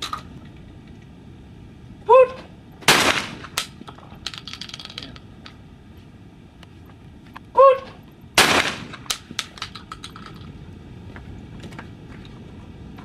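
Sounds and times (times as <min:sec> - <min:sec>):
person shouting: 0:02.1 - 0:02.5, 0:07.5 - 0:08.0
shotgun firing: 0:02.9 - 0:03.8, 0:08.4 - 0:09.5.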